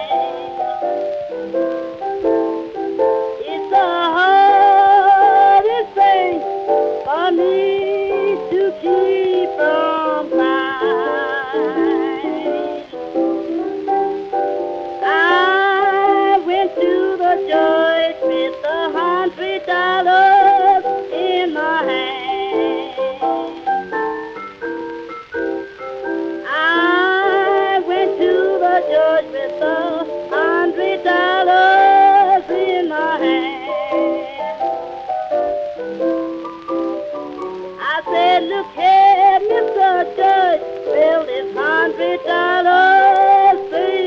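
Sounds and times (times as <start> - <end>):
piano chords: 0.0 - 44.0.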